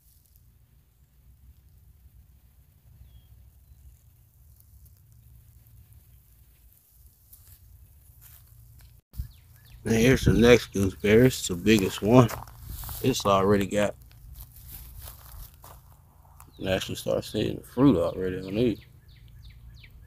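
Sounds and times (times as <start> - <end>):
faint rustling: 10.8 - 16.7.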